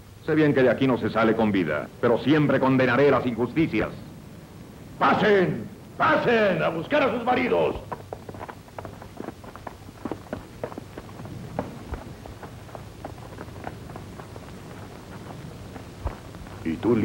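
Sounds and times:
low steady hum: 0:00.0 - 0:17.0
footsteps of people walking: 0:07.3 - 0:17.0.

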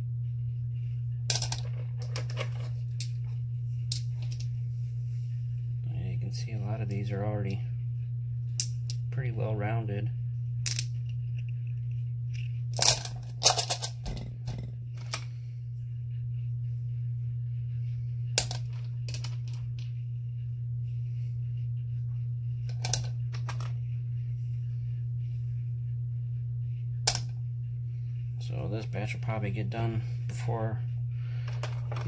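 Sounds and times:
steady low hum: 0:00.0 - 0:32.0.

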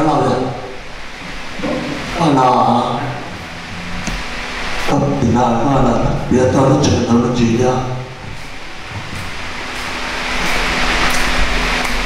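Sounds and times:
man speaking: 0:00.0 - 0:00.8, 0:01.6 - 0:03.8, 0:04.9 - 0:08.2
room noise hiss: 0:00.0 - 0:12.0.

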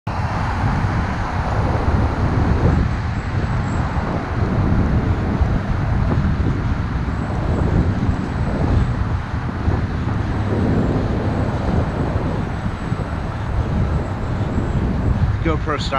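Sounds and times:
road traffic roar: 0:00.1 - 0:15.9.

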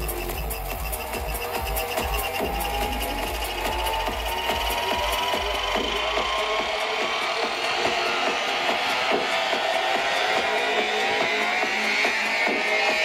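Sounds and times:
rising synth tone: 0:00.0 - 0:07.2
psytrance electronic beat: 0:00.0 - 0:13.0.

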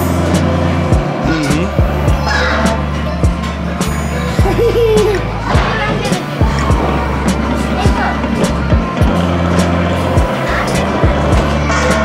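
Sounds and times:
music with deep bass and kick drum: 0:00.0 - 0:12.0.

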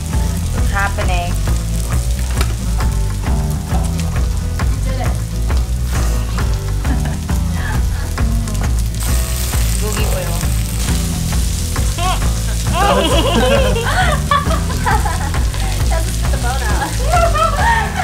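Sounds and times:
music with low bass line: 0:00.0 - 0:18.0
pork sizzling on a grill: 0:00.0 - 0:18.0.

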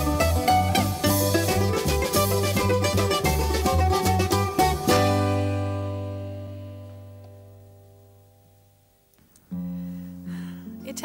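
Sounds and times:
plucked-string ensemble playing: 0:00.0 - 0:08.5.

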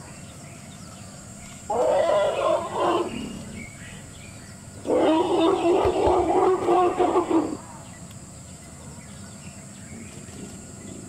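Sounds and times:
elephant trumpeting: 0:01.7 - 0:03.6, 0:04.8 - 0:07.6.

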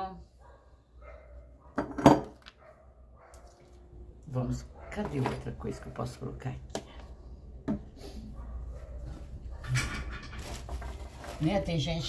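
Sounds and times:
ceramic figurine clinking on metal tray: 0:01.8 - 0:02.4.

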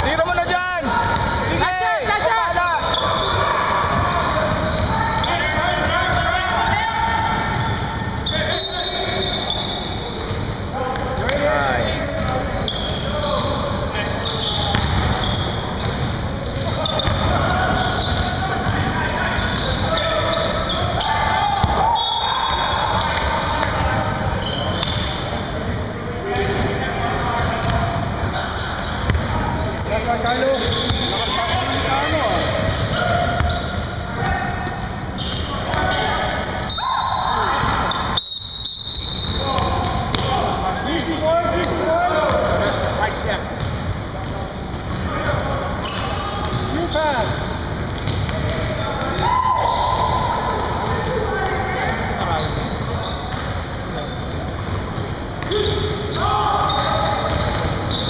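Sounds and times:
players' voices echoing: 0:00.0 - 0:38.2, 0:38.8 - 0:58.0.

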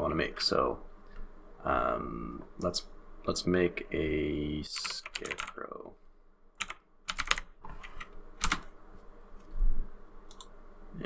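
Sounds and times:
computer keyboard typing: 0:04.8 - 0:05.6, 0:06.6 - 0:08.7.

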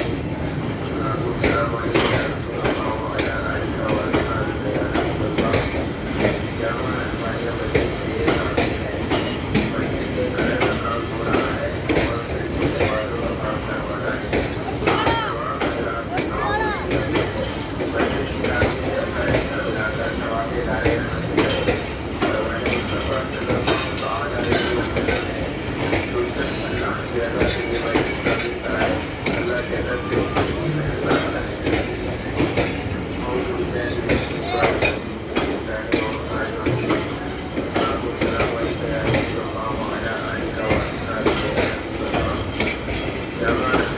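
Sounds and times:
train wheels rolling on rails: 0:00.0 - 0:43.9.

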